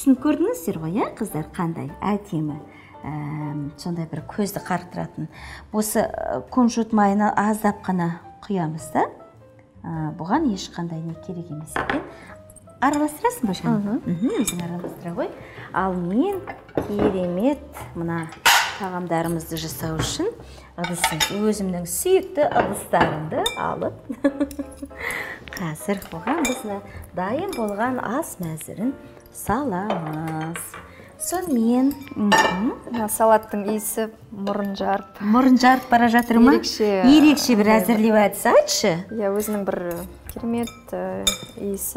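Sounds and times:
utensils clinking against dishes: 11.8s - 41.9s
forks clinking on glass bowl: 20.8s - 21.6s, 25.5s - 26.8s, 29.8s - 33.8s, 39.3s - 41.9s.

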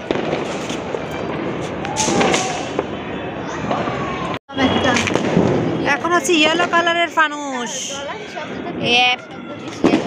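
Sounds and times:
firecracker bangs: 0.0s - 3.0s, 4.6s - 6.8s, 9.8s - 10.0s
distant fireworks crackling: 0.0s - 7.9s, 9.6s - 10.0s.

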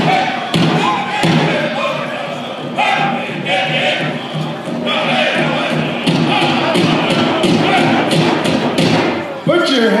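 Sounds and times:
high-pitched group singing: 0.0s - 9.0s
drum struck in steady beats: 0.0s - 9.5s.

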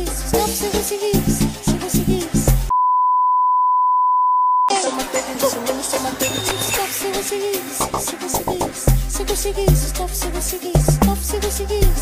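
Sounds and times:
steady test-tone beep: 2.7s - 4.7s
beat-driven dance music: 4.7s - 12.0s.

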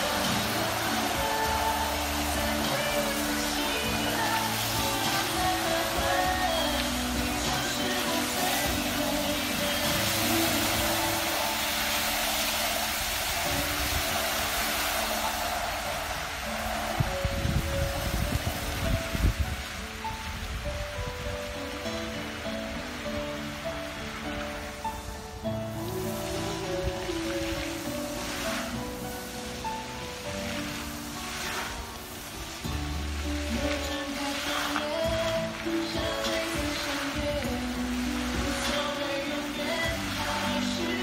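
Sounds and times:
music playing: 0.0s - 41.0s
water jets hissing: 0.0s - 41.0s.

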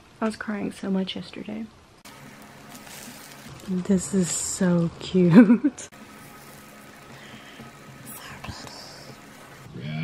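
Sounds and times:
faint background hum and hiss: 0.0s - 10.0s.

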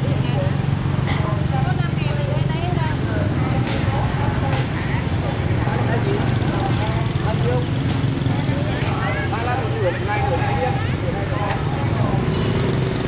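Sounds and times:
low hum of traffic: 0.0s - 13.0s
people talking: 0.0s - 13.0s.

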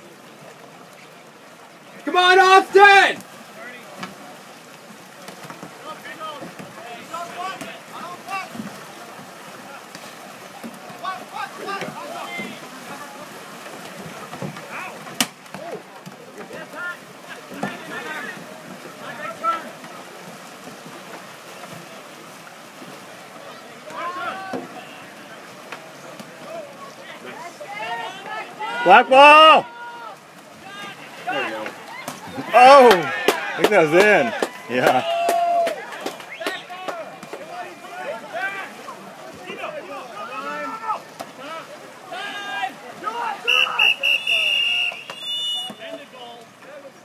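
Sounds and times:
distant shouts and calls: 1.9s - 3.9s, 23.3s - 25.5s, 26.4s - 46.6s.

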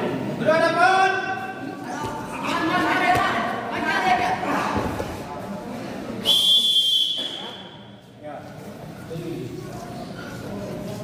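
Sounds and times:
referee's whistle: 6.2s - 7.8s.

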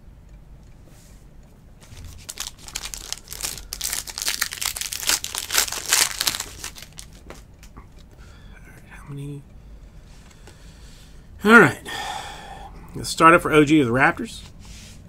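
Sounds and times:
foil wrapper crinkling and tearing: 1.9s - 7.7s.

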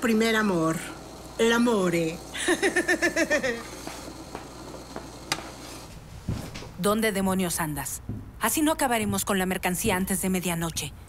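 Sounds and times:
woman laughing: 2.3s - 3.9s.

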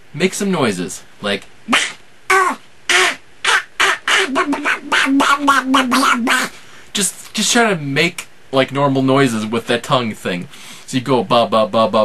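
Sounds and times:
man making duck voice noises: 1.7s - 6.6s.

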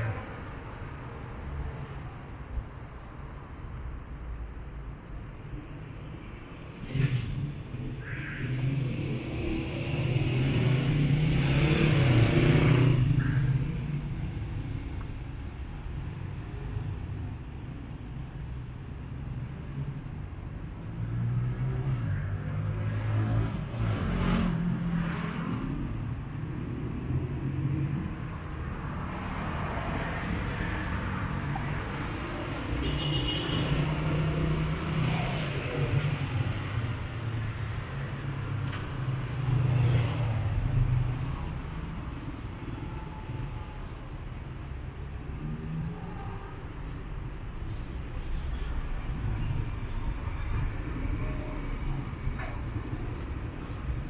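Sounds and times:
vehicles passing: 0.0s - 54.0s.

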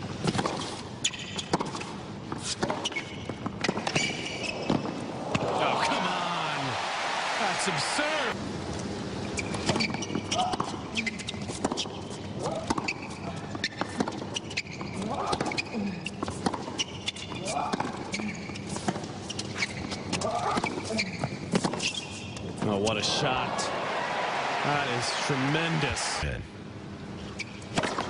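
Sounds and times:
crowd murmur: 5.2s - 8.3s.

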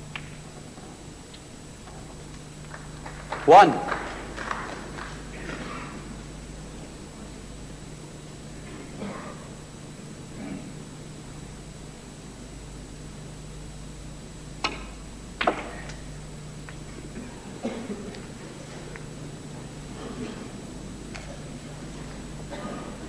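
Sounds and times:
faint murmurs: 3.4s - 6.8s.

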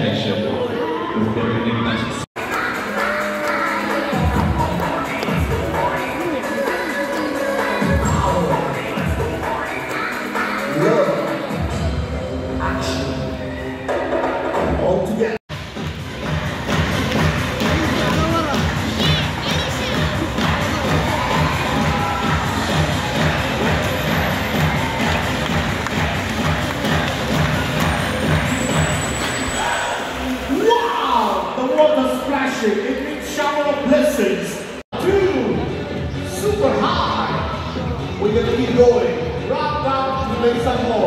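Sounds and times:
scattered voices: 0.0s - 15.4s, 16.2s - 41.0s
audience cheering and shouting: 16.2s - 31.7s.

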